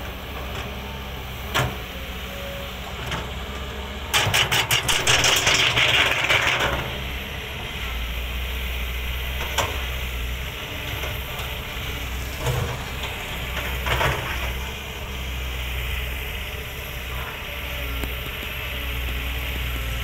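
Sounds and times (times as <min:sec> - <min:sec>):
excavator diesel engine running: 0:00.0 - 0:20.0.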